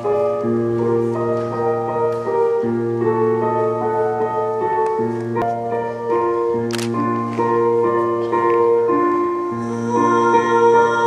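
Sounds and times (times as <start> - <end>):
keyboard chords: 0.0 - 11.0
sharp click: 6.7 - 7.0.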